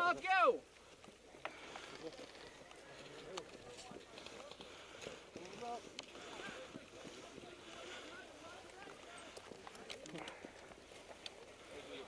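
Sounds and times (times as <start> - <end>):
footsteps on dry ground: 0.6 - 12.0
distant people talking: 1.3 - 12.0.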